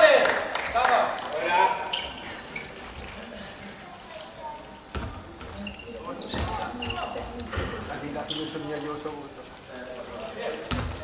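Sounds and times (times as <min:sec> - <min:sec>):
shoe squeaks: 0:01.8 - 0:03.3, 0:03.9 - 0:07.4, 0:08.1 - 0:08.8
ball thudding on hardwood court: 0:10.7 - 0:11.0.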